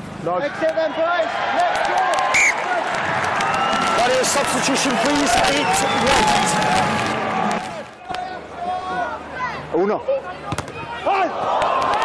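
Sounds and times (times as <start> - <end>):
crowd cheering and clapping: 0.5 - 8.2, 11.2 - 12.0.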